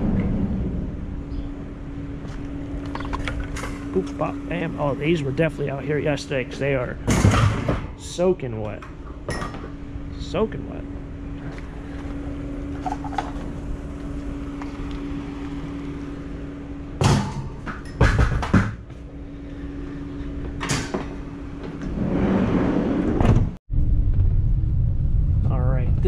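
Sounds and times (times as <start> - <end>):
low hum: 0.0 - 26.0.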